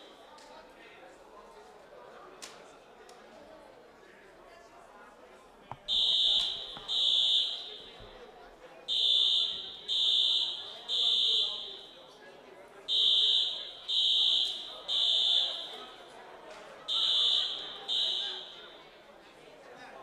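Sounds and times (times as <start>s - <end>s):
fire alarm beeping: 5.7s - 8.2s, 8.9s - 12.1s, 12.9s - 16.2s, 16.9s - 18.9s.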